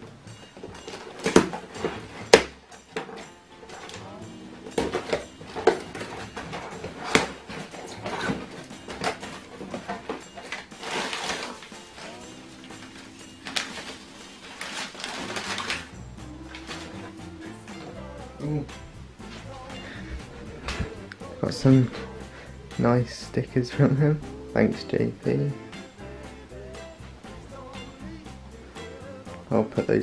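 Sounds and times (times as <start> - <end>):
background music: 0.0 - 30.0
packing tape ripping: 4.8 - 12.3, 13.4 - 17.1
newspaper crumpling and rustling: 4.8 - 17.1.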